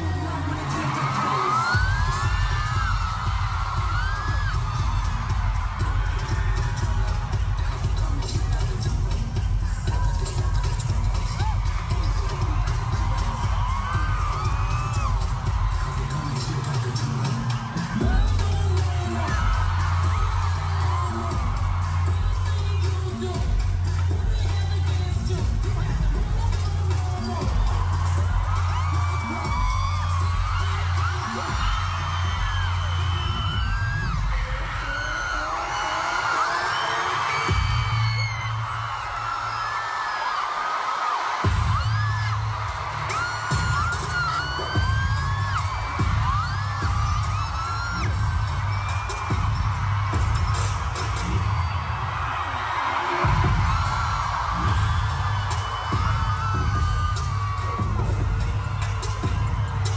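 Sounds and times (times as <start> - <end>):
crowd screaming and whooping: 0.0 - 59.9
dance track through sound system: 0.0 - 59.9
pop music through arena speakers: 0.0 - 59.9.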